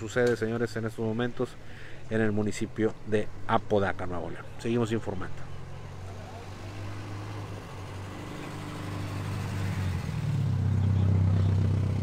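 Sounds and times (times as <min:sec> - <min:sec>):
vehicle engine humming: 0:01.6 - 0:12.0.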